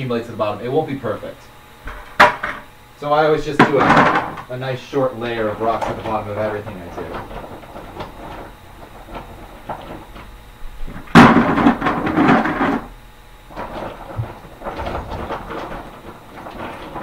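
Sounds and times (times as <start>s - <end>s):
rocks rattling in plastic bucket: 1.9s - 17.0s.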